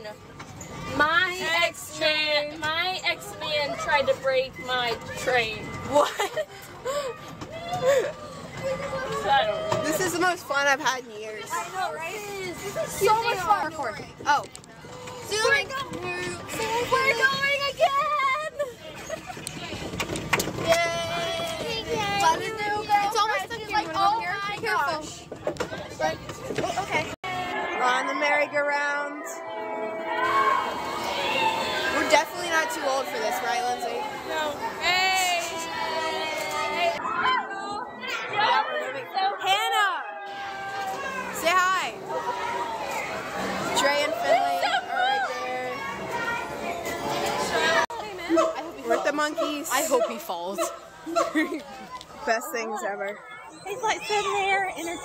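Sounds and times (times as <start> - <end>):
children chattering and calling out: 0.0 - 55.0.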